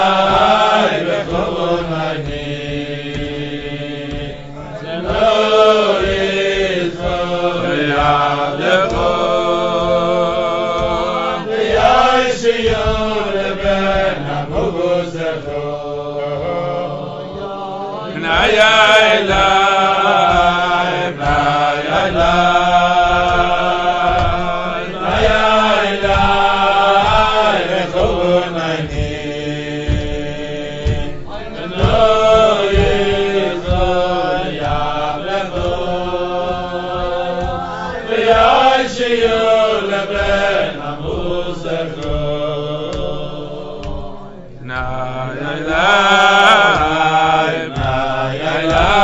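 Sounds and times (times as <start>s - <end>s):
low knocks keeping time: 0.0s - 49.0s.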